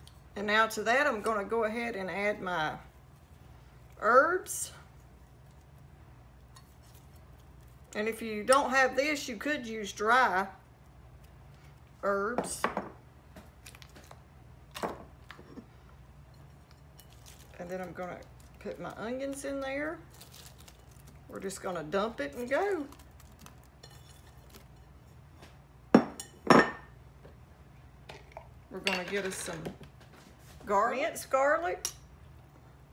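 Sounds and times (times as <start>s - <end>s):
woman's voice: 12.0s - 12.8s, 17.6s - 20.0s, 21.3s - 22.9s, 30.6s - 31.9s.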